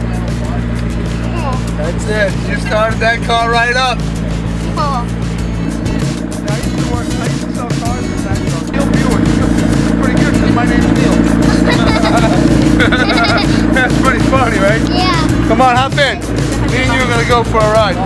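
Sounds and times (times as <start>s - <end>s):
music with pulsing bass: 0.0s - 18.0s.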